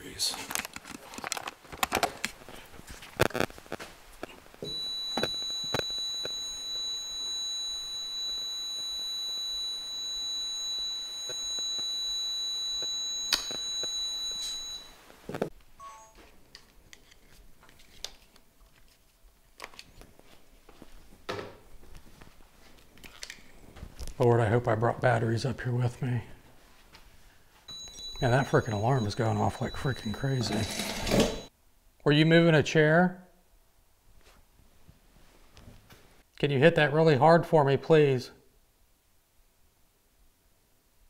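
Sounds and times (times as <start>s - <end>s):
clicks and handling noises: 0.4s - 6.4s
high-pitched electronic alarm tone: 4.6s - 15.0s, 27.7s - 31.5s.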